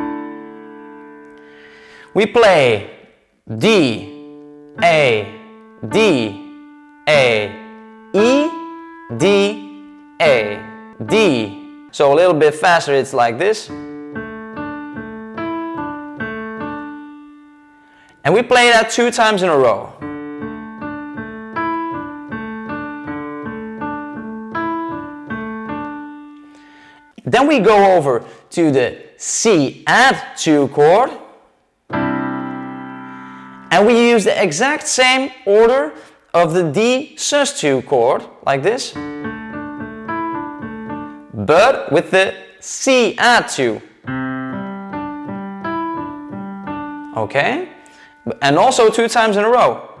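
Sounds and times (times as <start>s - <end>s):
piano arpeggio: 0.0s - 2.0s, 3.9s - 18.0s, 20.0s - 27.1s, 31.9s - 34.3s, 38.9s - 41.9s, 44.0s - 48.1s.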